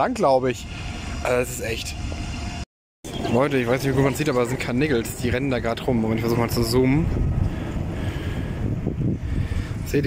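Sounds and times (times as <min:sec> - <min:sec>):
wind buffeting microphone: 0:00.4 - 0:10.0.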